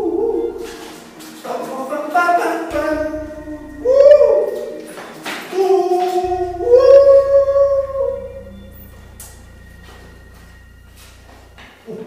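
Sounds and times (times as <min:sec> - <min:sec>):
high singing voice with music: 0:00.0 - 0:11.6.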